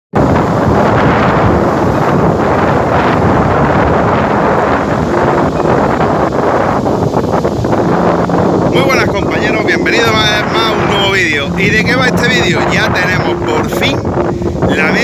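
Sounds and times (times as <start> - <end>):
wind buffeting microphone: 0.1 - 15.0.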